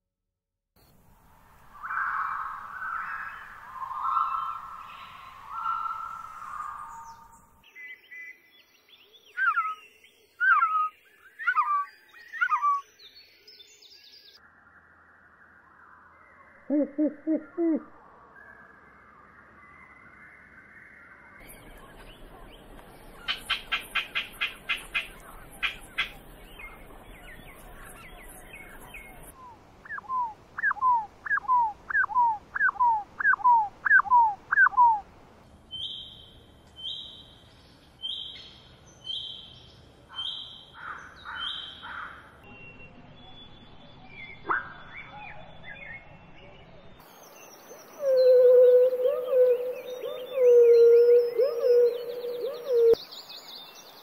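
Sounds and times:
bird calls rising and falling: 1.8 - 7.4, 9.4 - 12.8, 47.7 - 53.1
high whistled bird notes: 47.9 - 53.0.

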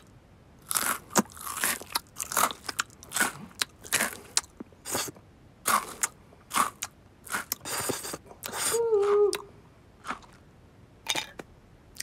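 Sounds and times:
cartoon crunching and chewing: 0.0 - 12.0.

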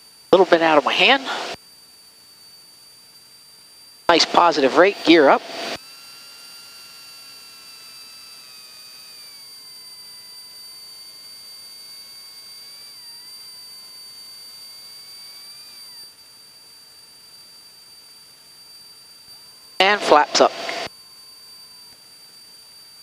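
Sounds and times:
landing gear motor whine: 0.0 - 23.0
steady high electronic tone: 0.4 - 2.8, 3.6 - 23.0.

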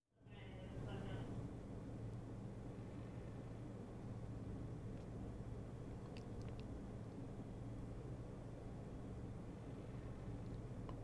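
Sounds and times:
faint low hum: 0.1 - 11.0.

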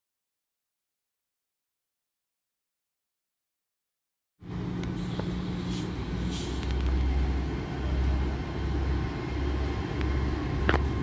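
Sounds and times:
train diesel engines droning: 4.4 - 11.0.

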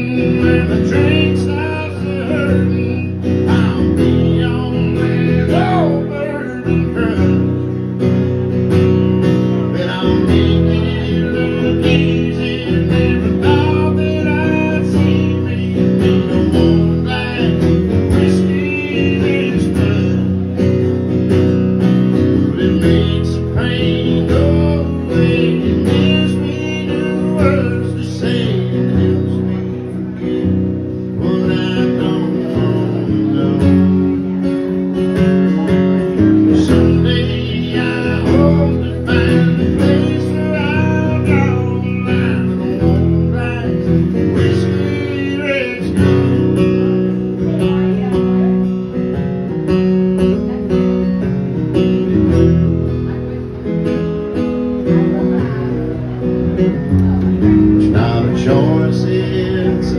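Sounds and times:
man singing: 0.0 - 52.6, 56.8 - 59.9
acoustic guitar strumming: 0.0 - 59.9.

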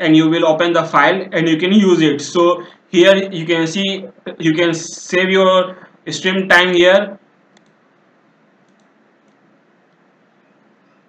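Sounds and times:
low hiss: 0.0 - 11.0
computer mouse clicks: 7.5 - 7.8, 8.6 - 10.1.

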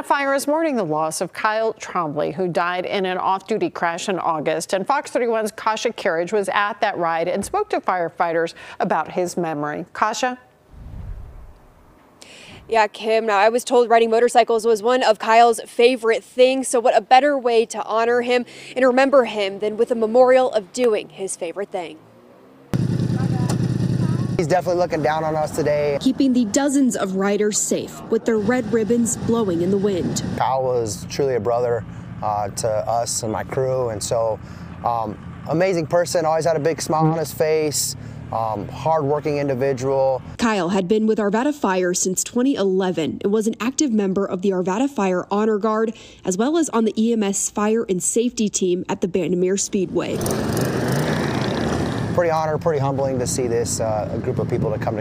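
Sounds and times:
motorcycle engine idling: 22.8 - 26.6, 28.3 - 40.4.

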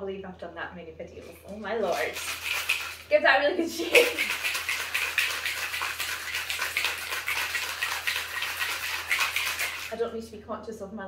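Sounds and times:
ice rattling in cocktail shaker: 1.2 - 10.0.

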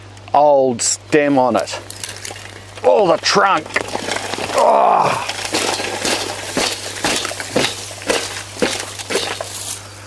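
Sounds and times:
rustling foliage: 1.6 - 10.0
woody stems cracking and snapping: 1.8 - 9.9.

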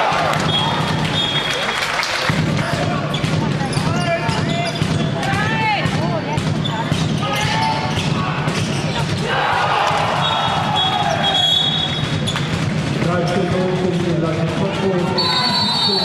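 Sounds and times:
players calling out: 0.0 - 16.0
sports shoes squeaking: 0.4 - 1.9, 2.6 - 9.2, 10.1 - 14.0, 15.0 - 16.0
ball bouncing on hall floor: 2.2 - 15.3.

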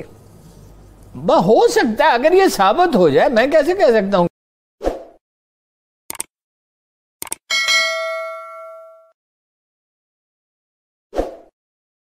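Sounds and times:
notification bell ding: 7.5 - 9.2.

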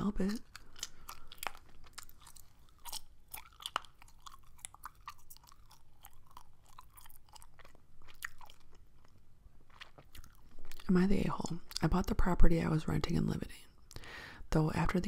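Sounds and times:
gum chewing mouth clicks: 0.4 - 10.9.

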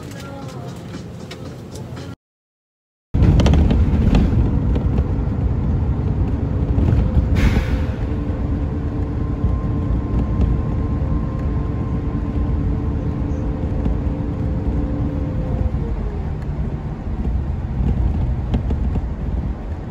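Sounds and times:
vehicle road and engine rumble: 0.0 - 2.2, 3.2 - 19.9.

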